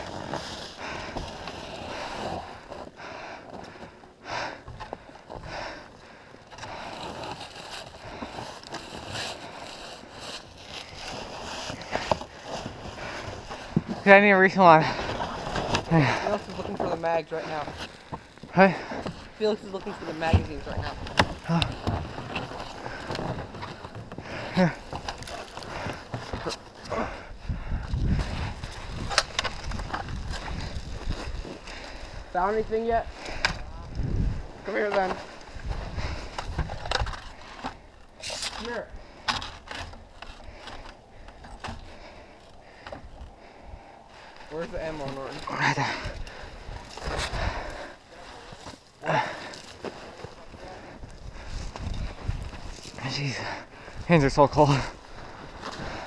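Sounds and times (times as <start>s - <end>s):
wind rumble: 26.9s - 38.0s, 50.9s - 54.2s.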